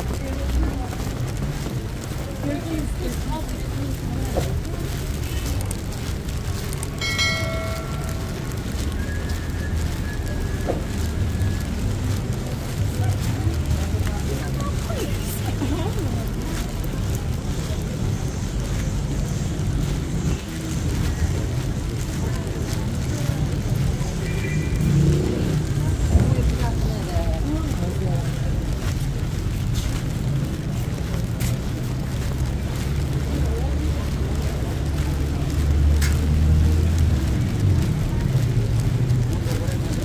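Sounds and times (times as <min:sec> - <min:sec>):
passers-by talking: 0:00.0 - 0:40.0
traffic rumble: 0:00.0 - 0:40.0.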